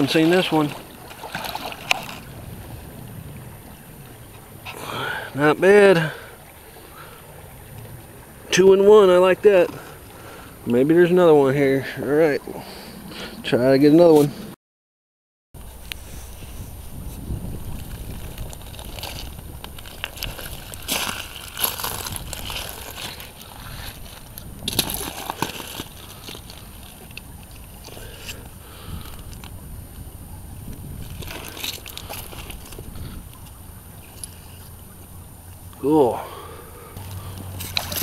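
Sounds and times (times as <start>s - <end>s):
water sloshing and splashing: 0.0s - 13.3s, 15.6s - 38.0s
steady low rumble: 1.8s - 13.3s, 15.6s - 35.8s.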